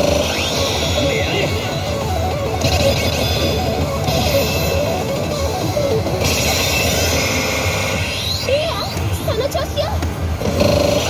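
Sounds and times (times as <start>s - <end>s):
slot machine music: 0.0s - 8.4s.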